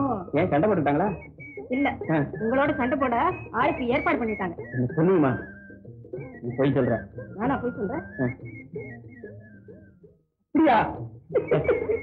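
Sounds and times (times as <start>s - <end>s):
person whistling a tune: 0.0s - 10.2s, 11.4s - 12.0s.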